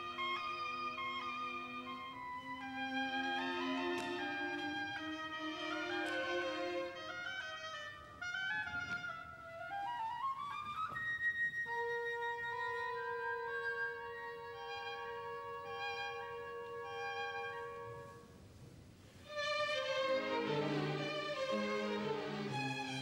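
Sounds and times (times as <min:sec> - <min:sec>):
orchestral ballet music: 0:00.0 - 0:18.3, 0:19.2 - 0:23.0.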